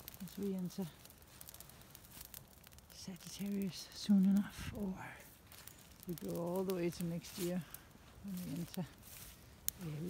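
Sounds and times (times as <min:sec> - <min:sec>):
campfire crackling: 0:00.0 - 0:10.0.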